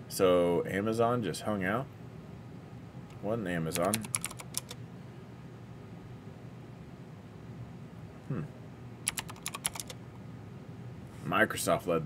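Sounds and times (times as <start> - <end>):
computer keyboard typing: 3.8 - 4.8, 9.1 - 10.0.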